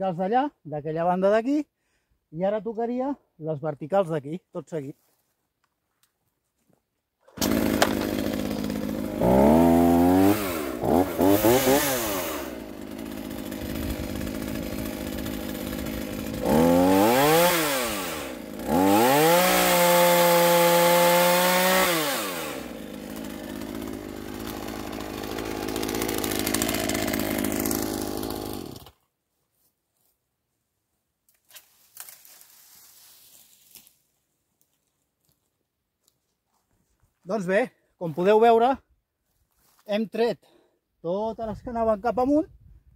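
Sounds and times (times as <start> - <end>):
chainsaw cutting branches: 7.2 - 29.0.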